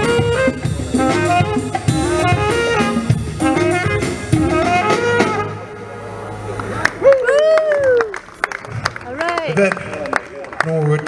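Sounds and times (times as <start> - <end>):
drum kit: 0.0 - 5.7
flugelhorn melody: 0.0 - 6.7
bass: 0.0 - 10.1.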